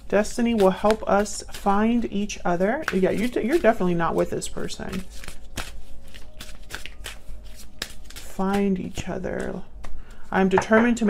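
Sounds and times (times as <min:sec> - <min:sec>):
cards being shuffled: 0:00.2 - 0:10.2.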